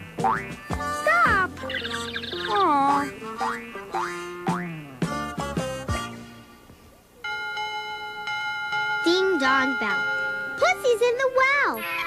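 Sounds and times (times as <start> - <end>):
bell ringing: 7.2 - 11.0.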